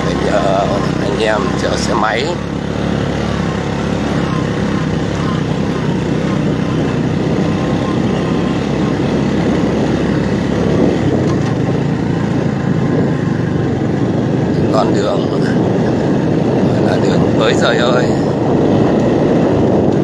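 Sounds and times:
motorcycle engine running: 0.0 - 20.0
wind and road noise: 0.0 - 20.0.

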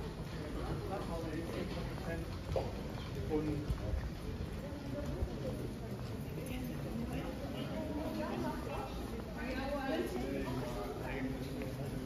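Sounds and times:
footsteps on brick paving: 0.0 - 9.7.

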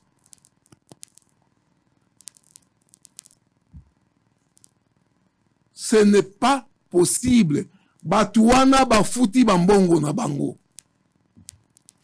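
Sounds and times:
small clicks and rustles: 0.0 - 1.4, 2.0 - 5.2, 10.6 - 12.0.

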